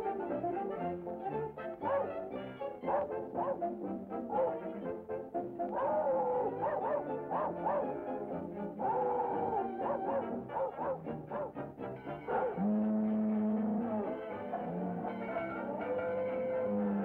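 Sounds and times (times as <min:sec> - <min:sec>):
orchestral cartoon music with brass: 0:00.0 - 0:17.0.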